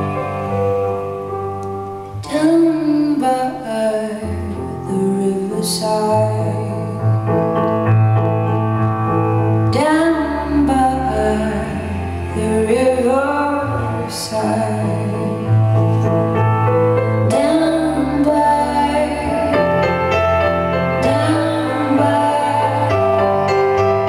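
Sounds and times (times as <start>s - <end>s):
piano chords: 0.0s - 24.0s
woman singing: 2.2s - 7.2s, 9.7s - 15.6s, 17.2s - 23.8s.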